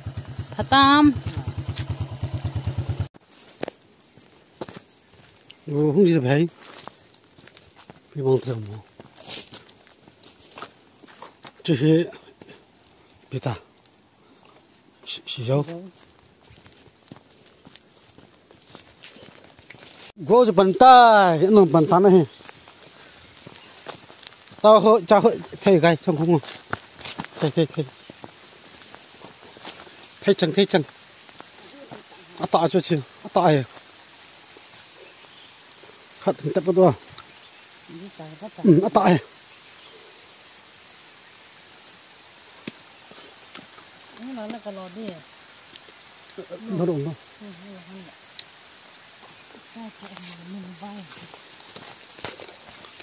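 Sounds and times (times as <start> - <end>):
faint outdoor hiss: 0.0 - 53.0
high insect drone: 0.0 - 53.0
person's voice: 0.6 - 1.4, 49.6 - 51.4
footsteps through undergrowth: 1.2 - 13.4, 14.5 - 38.2, 42.4 - 46.8, 48.2 - 53.0.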